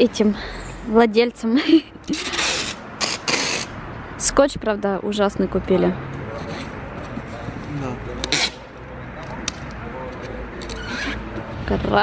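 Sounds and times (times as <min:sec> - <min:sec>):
low street rumble: 0:00.0 - 0:12.0
packing tape rasp: 0:02.1 - 0:03.7
faint voices: 0:05.9 - 0:12.0.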